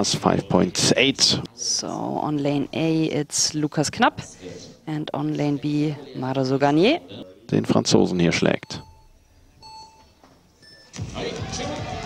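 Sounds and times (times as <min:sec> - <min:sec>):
higher-pitched beep: 0:08.6 - 0:11.0.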